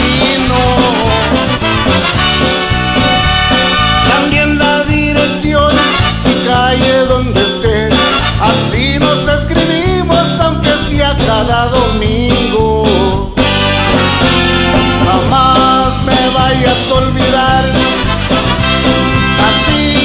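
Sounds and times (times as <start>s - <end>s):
man singing into microphone: 0.0s - 1.8s, 3.8s - 13.6s, 14.8s - 18.4s, 19.1s - 20.0s
live latin band playing: 0.0s - 20.0s.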